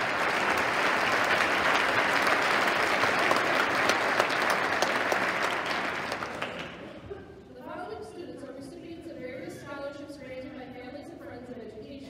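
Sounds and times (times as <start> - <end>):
audience applause: 0.0 - 7.0.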